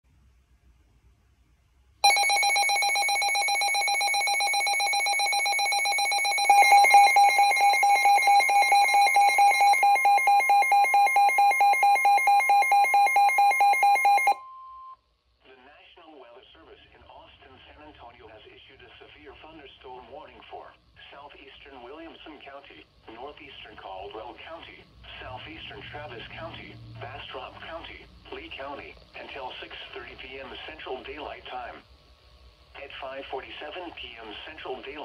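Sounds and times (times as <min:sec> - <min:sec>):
rapid electronic alarm beeping: 0:02.0 - 0:14.5
quiet voice from radio: 0:15.4 - 0:31.9, 0:32.8 - 0:35.0.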